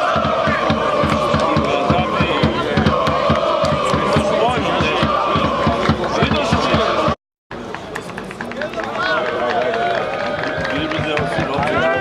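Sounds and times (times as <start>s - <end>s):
voices calling out: 0.0s - 7.2s
open-air background noise: 7.5s - 12.0s.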